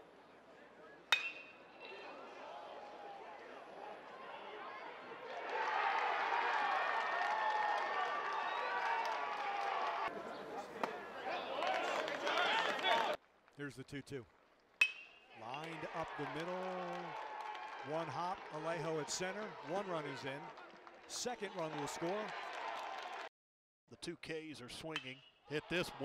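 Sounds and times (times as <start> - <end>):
metal bat hitting ball: 1.1 - 1.6, 14.8 - 15.3
crowd cheering and shouting: 1.8 - 13.2, 15.4 - 23.3.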